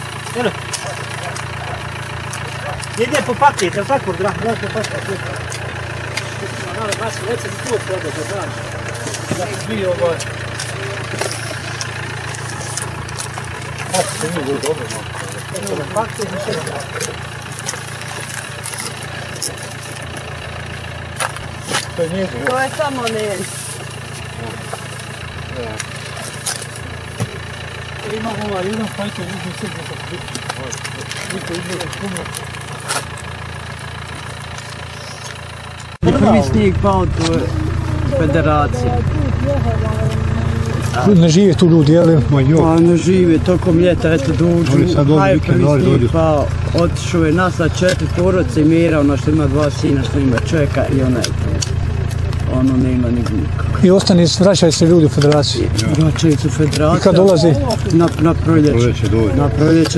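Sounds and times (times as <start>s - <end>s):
car engine idling: 0.0s - 59.9s
voices talking: 0.0s - 59.9s.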